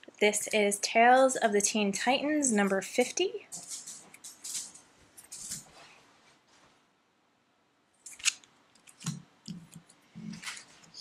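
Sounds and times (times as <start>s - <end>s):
plastic bag rustling and crinkling: 3.5s - 6.0s.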